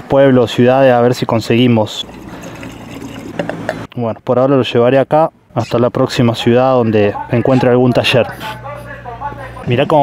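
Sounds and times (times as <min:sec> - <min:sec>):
water pouring into container: 0:01.9 - 0:03.5.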